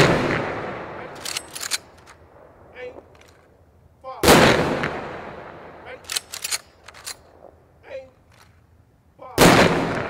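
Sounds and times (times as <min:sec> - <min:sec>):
sharp gunfire cracks: 0:00.0 - 0:02.3, 0:04.2 - 0:07.5, 0:09.4 - 0:10.0.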